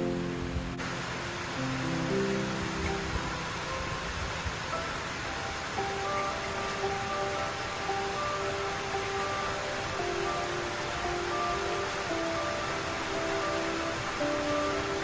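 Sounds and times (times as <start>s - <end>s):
falling rain hiss: 0.0s - 15.0s
slow instrumental music: 0.0s - 15.0s.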